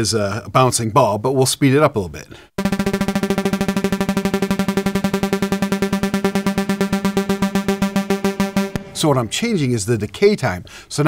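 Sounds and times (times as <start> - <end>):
synthesizer rapid repeated plucks: 2.6 - 9.6.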